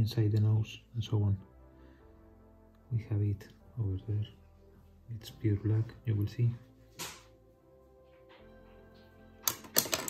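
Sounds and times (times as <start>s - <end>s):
faint background music: 0.0s - 10.0s
hard objects clicking on a desk: 9.4s - 10.0s.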